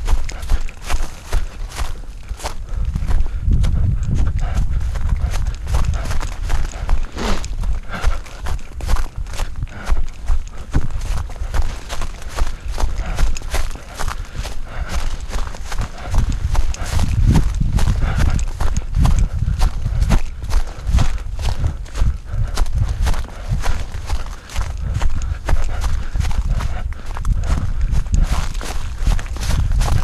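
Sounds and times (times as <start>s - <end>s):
footfalls on dirt path: 0.0s - 30.0s.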